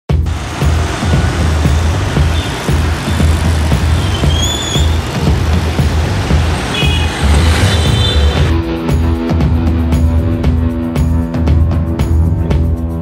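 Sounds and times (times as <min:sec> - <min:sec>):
music with heavy bass: 0:00.1 - 0:13.0
motor scooter traffic: 0:00.2 - 0:10.5.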